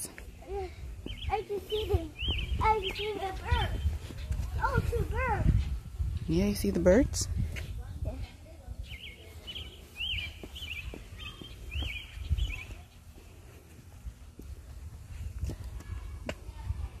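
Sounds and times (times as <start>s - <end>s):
light footsteps: 0.0s - 6.3s, 9.2s - 16.7s
small bird chirping: 1.1s - 4.3s, 8.8s - 13.0s.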